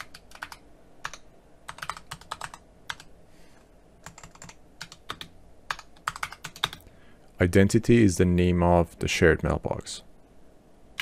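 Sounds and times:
keyboard typing clicks: 0.0s - 3.1s, 4.0s - 6.9s.

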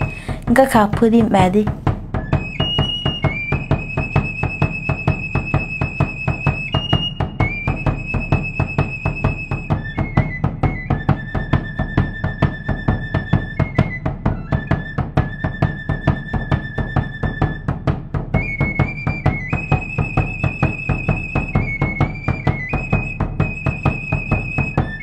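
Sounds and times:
flute holding long notes: 0.0s - 0.4s, 2.2s - 25.0s
fast drum beat: 0.0s - 6.2s.

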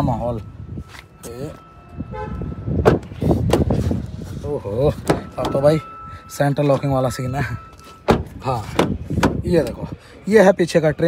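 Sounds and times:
car horn toot: 1.8s - 3.7s
sharp thump: 2.8s - 3.8s.

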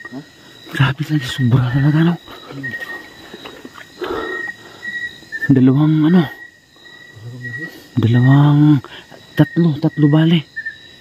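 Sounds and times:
night insects trilling: 0.0s - 11.0s
breathy rustle: 2.2s - 5.1s.

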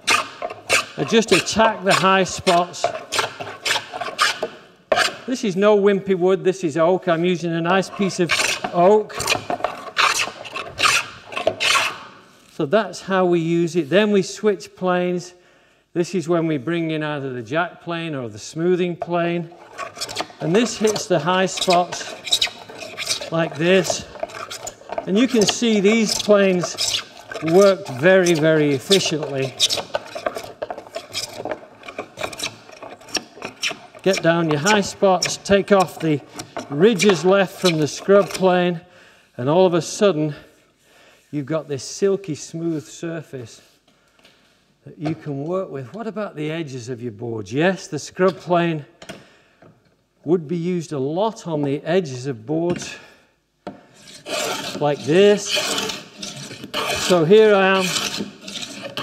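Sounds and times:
hand plane cutting wood: 0.0s - 5.3s, 7.7s - 12.2s, 19.4s - 38.5s, 54.0s - 59.0s.

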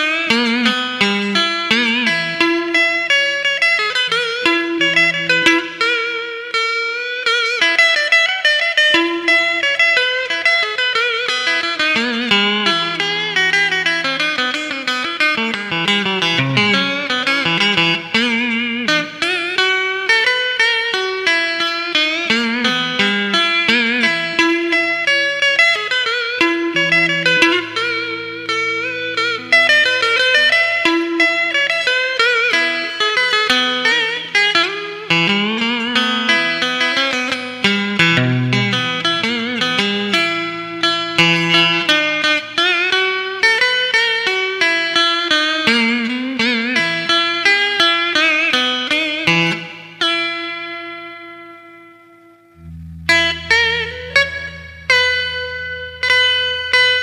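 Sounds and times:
solo electric guitar melody: 0.0s - 57.0s.

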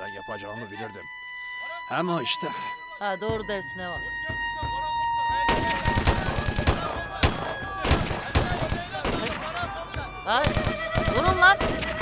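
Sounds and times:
men's voices: 0.0s - 3.0s, 4.0s - 11.3s
rifle shots: 5.5s - 9.5s, 10.4s - 12.0s.

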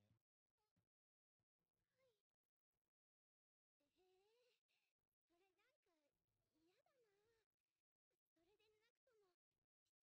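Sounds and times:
faint high gliding voice: 1.8s - 2.4s, 3.8s - 7.6s, 8.3s - 10.0s.

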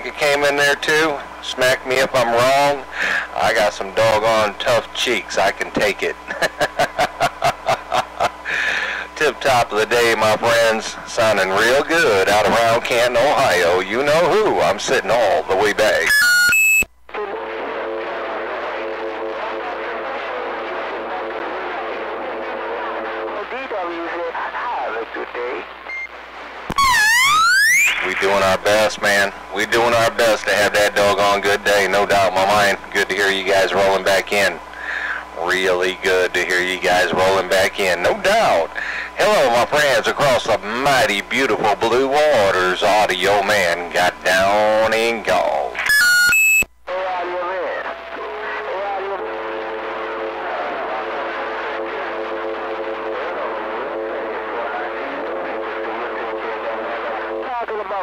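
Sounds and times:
radio hiss: 0.0s - 58.0s
electronic roger beep: 16.0s - 16.9s, 25.9s - 26.1s, 26.7s - 28.3s, 45.8s - 46.7s
electronic tone gliding upward: 26.8s - 28.1s.

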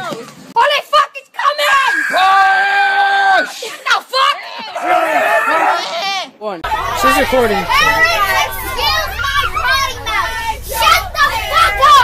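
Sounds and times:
children shouting and chattering: 0.0s - 12.0s
bus engine rumble: 6.6s - 12.0s.

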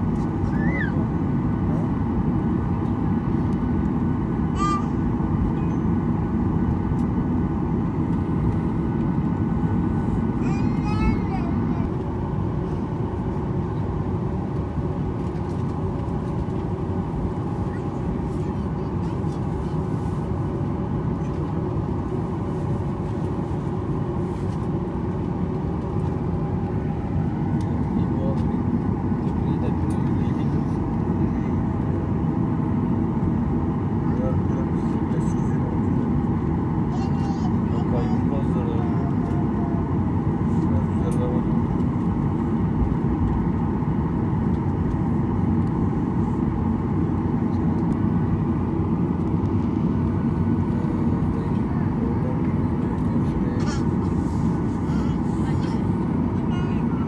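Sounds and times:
airliner cabin rumble: 0.0s - 57.0s
jet engines at low power: 0.0s - 57.0s.

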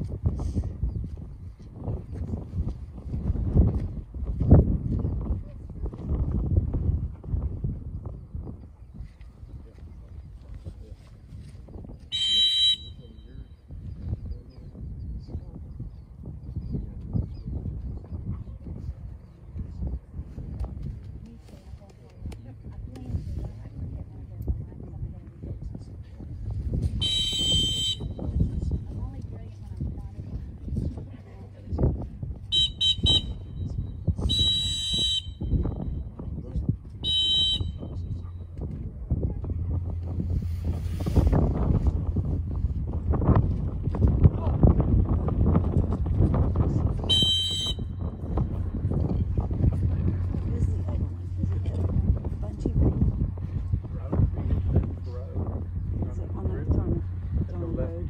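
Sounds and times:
low wind rumble: 0.0s - 58.0s
dog whistle blast: 12.1s - 13.0s, 27.0s - 28.1s, 32.6s - 33.4s
dog training whistle blasts: 12.1s - 13.2s, 27.0s - 28.1s, 32.5s - 33.4s, 34.3s - 35.6s, 37.0s - 37.9s, 47.1s - 48.0s.

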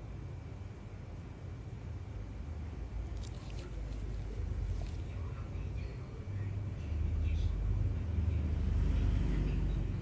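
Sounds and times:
low steady rumble: 0.0s - 10.0s
faint voices: 3.1s - 10.0s.

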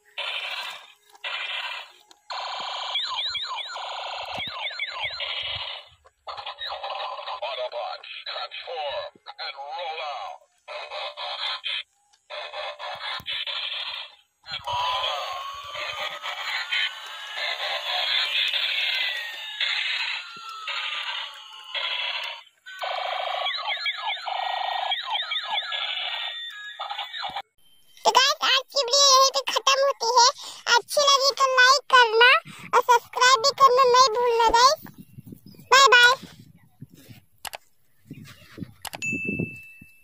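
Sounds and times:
tinny electronic toy voice: 0.0s - 27.4s, 35.7s - 36.2s.

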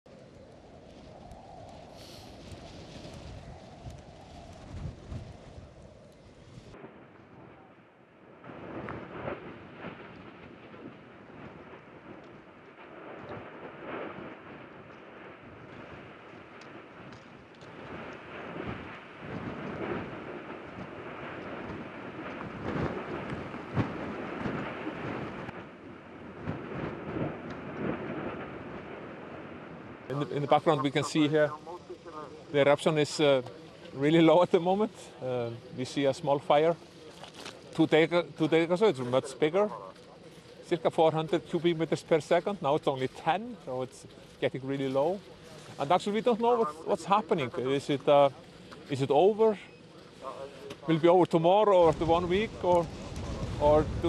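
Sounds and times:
steady rushing noise: 0.1s - 7.5s, 8.3s - 54.0s
lava crackling and popping: 0.1s - 54.0s
low rumble of eruption: 0.1s - 54.0s.

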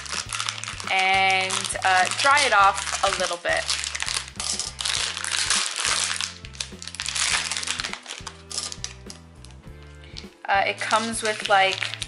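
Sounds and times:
background music with bass line: 0.0s - 12.0s
plastic bag crinkling: 0.0s - 12.0s.

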